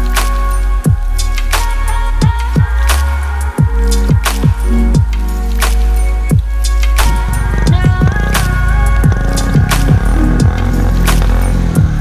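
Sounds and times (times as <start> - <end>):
electronic music with kick drums: 0.0 - 12.0.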